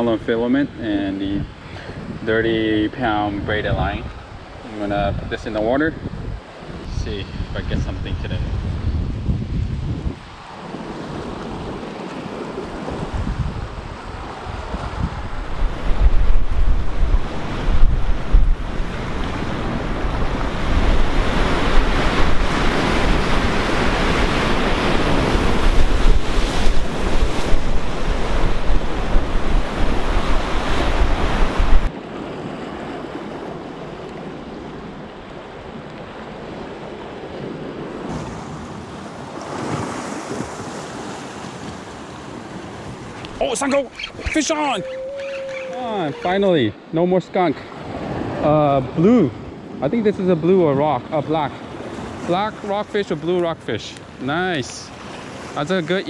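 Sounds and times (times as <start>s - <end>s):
wind rumbling on microphone: 0.7s - 46.9s
surf breaking over rocks: 37.9s - 46.7s.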